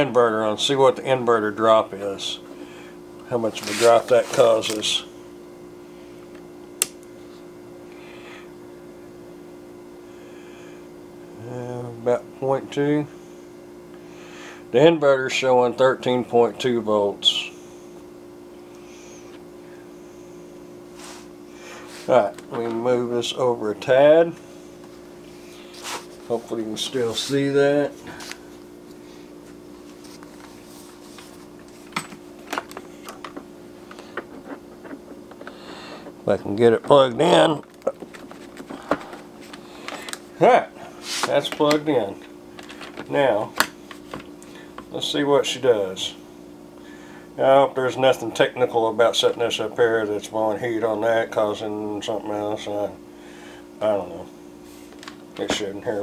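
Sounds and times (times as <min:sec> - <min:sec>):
steady electrical hum: 0:00.0 - 0:56.0.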